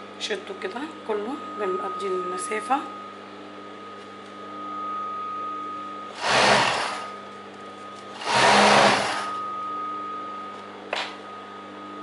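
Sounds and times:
motor humming: 6.1 - 7.3, 7.9 - 9.7
sewing machine stitching: 6.2 - 7.1, 8.2 - 9.3.

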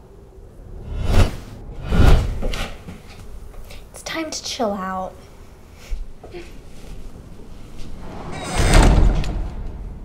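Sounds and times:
rushing whoosh with rumble: 0.4 - 3.6.

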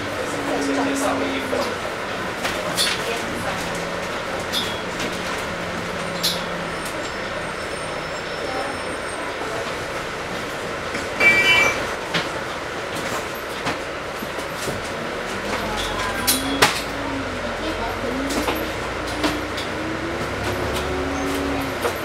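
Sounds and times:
bus body rattles: 0.0 - 22.0
bus engine droning: 0.0 - 22.0.

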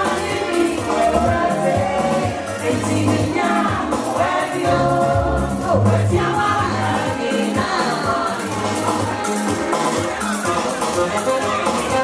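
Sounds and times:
many voices singing: 0.0 - 12.0
music with bass line: 0.0 - 12.0.

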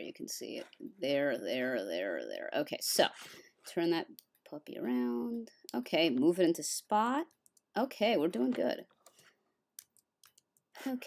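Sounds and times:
computer mouse clicks: 8.9 - 9.2.

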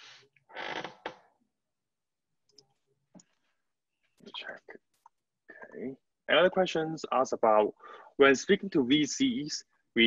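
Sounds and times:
person speaking: 4.2 - 4.8.

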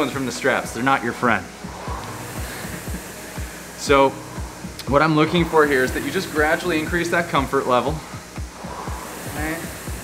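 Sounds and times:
background music with low beat: 0.0 - 10.0
rowing machine flywheel whirring: 0.0 - 10.0.

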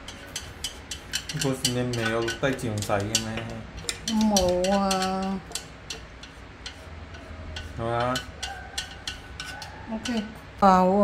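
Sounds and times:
chopsticks tapping in metal bowl: 0.0 - 10.4.

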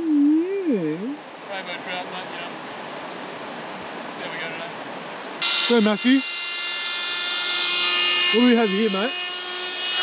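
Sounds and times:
small electric motor whine: 5.4 - 10.0.

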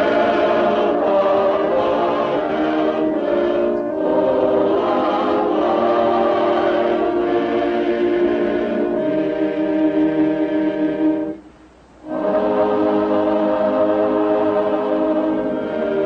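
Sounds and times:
choir singing a hymn: 0.0 - 11.4, 12.0 - 16.0.

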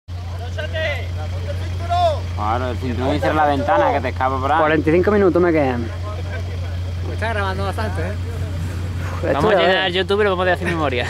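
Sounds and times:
vehicle engine droning: 0.1 - 11.0
people talking: 0.2 - 11.0.

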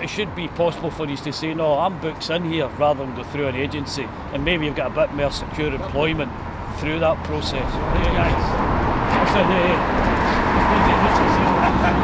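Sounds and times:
men talking over one another: 0.0 - 11.6
city street traffic: 0.0 - 12.0
man laughing: 10.8 - 12.0.

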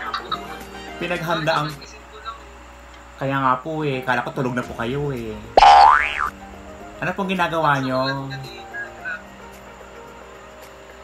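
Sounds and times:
cartoon whistle glide: 5.6 - 6.3.

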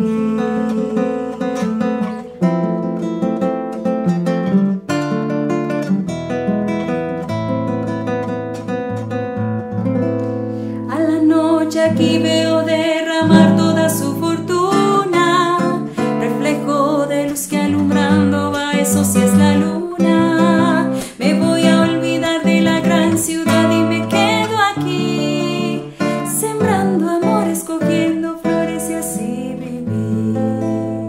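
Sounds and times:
woman singing: 0.0 - 3.0, 10.8 - 31.0
classical guitar plucking and strumming: 0.0 - 31.0.

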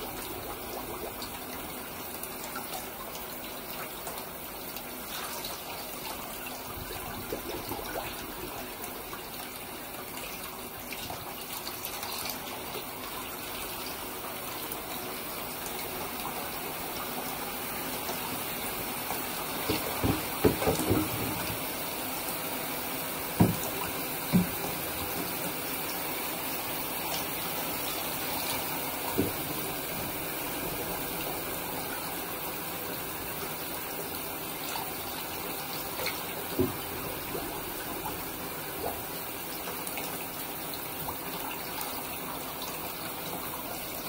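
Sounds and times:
water running into bathtub: 0.0 - 44.0.

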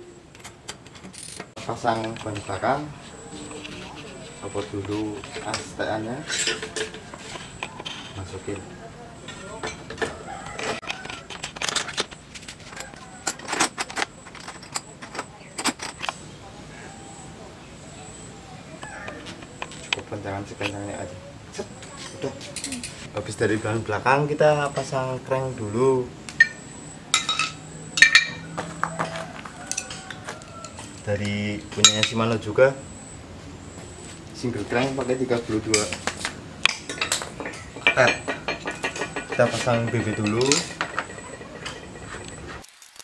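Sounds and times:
metal bicycle parts clinking: 0.4 - 16.2, 21.9 - 23.1, 26.4 - 28.8, 29.6 - 32.2, 35.7 - 43.0
metallic clicks and clinks: 10.6 - 16.2, 36.6 - 43.0.

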